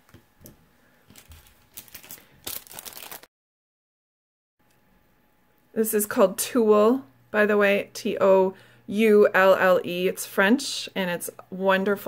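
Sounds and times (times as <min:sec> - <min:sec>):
packaging rustling and crinkling: 0:00.4 - 0:03.3.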